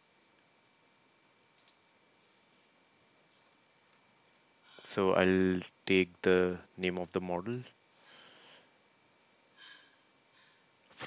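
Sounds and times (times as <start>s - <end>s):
computer mouse clicking: 1.6s - 1.8s.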